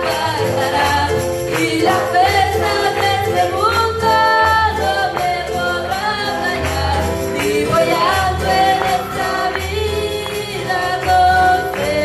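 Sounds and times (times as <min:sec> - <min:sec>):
acoustic guitar: 0:00.0 - 0:12.0
keyboard: 0:00.0 - 0:12.0
woman singing worship song: 0:00.0 - 0:12.0.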